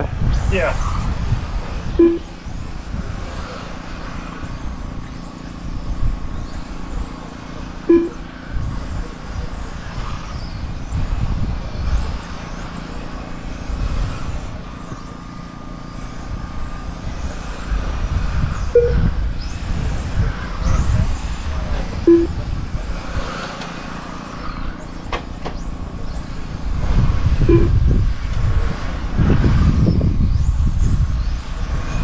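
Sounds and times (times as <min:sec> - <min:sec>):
rc car motors whining: 0:00.0 - 0:32.0
short beeps: 0:02.0 - 0:02.4, 0:07.8 - 0:08.3, 0:18.8 - 0:19.0, 0:22.1 - 0:22.4, 0:27.5 - 0:27.8.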